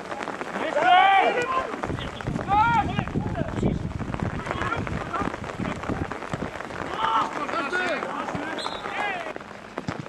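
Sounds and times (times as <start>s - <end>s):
people shouting: 2.4s - 3.1s, 6.8s - 9.3s.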